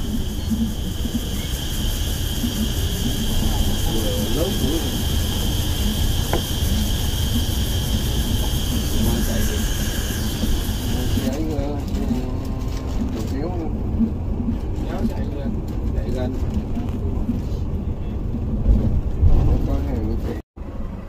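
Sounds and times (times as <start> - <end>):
high-pitched whine: 0.0 - 18.2
bus engine and road rumble: 0.0 - 21.0.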